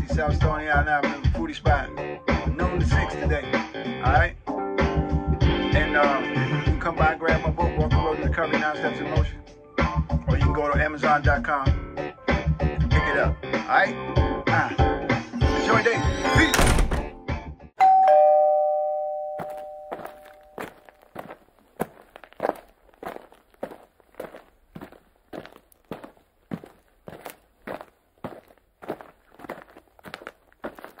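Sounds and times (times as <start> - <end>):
two-note chime: 17.8 - 20.8
footsteps walking: 19.4 - 31.0.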